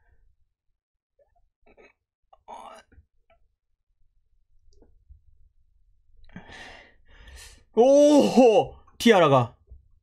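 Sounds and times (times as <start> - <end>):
man's non-word vocal sound: 7.8 - 9.4.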